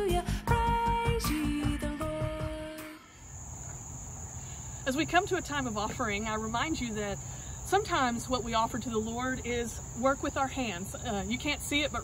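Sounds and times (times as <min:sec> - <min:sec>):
insect chorus whine: 0:02.2 - 0:12.0.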